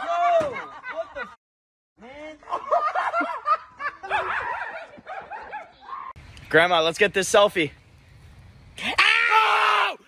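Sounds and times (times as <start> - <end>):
people laughing and snickering: 0.1 - 1.4, 2.4 - 5.7.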